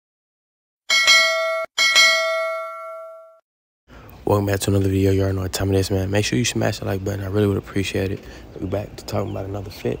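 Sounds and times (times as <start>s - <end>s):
notification bell dings: 0.9s - 3.4s.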